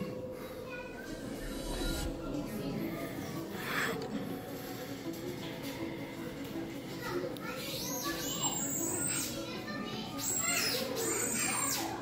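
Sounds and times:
children's voices: 0.0 - 4.7, 6.2 - 12.0.

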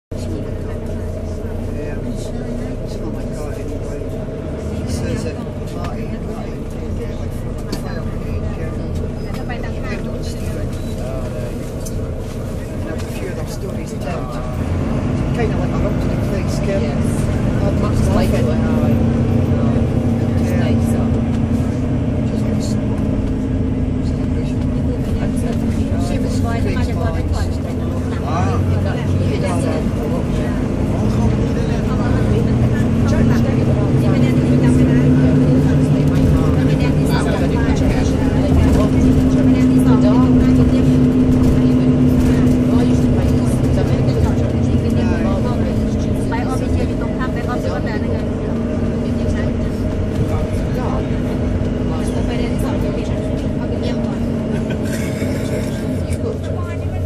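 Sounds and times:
bus diesel engine droning: 0.0 - 57.0.

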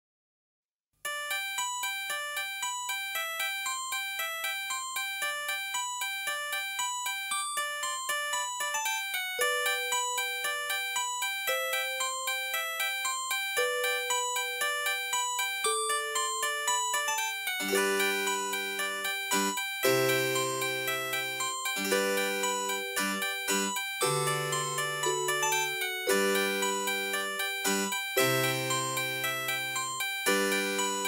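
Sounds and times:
held melody note: 13.6 - 31.0.

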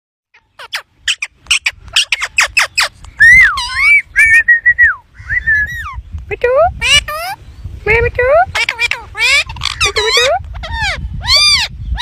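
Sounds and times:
parakeet chirping and whistling: 0.6 - 6.0.

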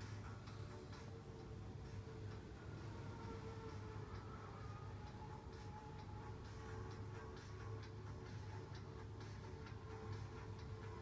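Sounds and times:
faint low hum: 0.0 - 11.0
light irregular ticks and clicks: 0.0 - 11.0.

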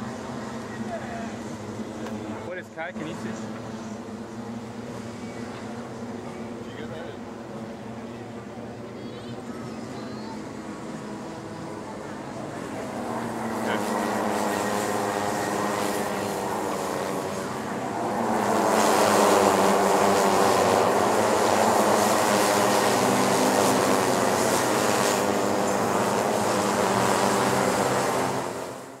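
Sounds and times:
kart engines racing: 0.0 - 29.0.

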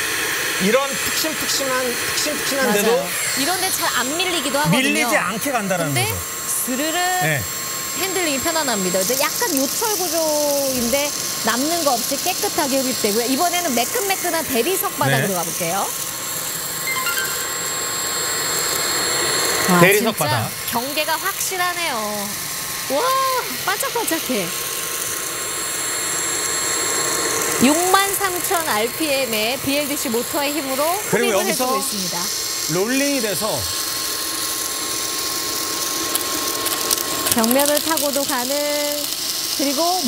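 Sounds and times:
stick vacuum running: 0.0 - 40.0
beads clicking in vacuum: 34.4 - 40.0.

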